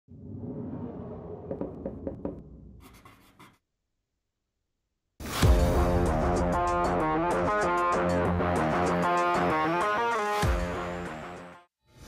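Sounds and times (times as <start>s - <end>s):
low rumble: 0.1s - 2.8s.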